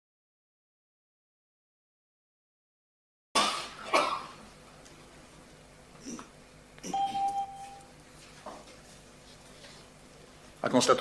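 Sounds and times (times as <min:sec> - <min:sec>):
person coughing: 0:03.4 - 0:04.4.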